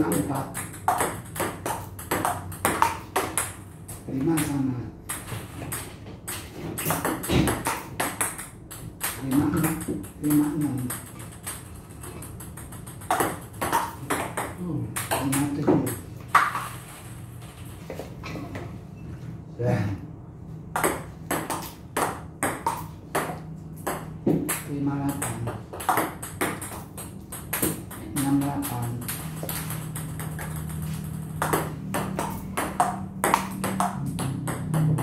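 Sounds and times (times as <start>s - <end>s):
table tennis ball clicking: 6.8s - 16.6s.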